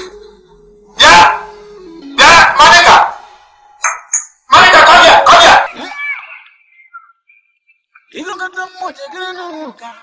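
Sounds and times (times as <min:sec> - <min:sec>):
dog barking: 0:01.0 - 0:01.5, 0:02.2 - 0:03.2, 0:04.5 - 0:05.8.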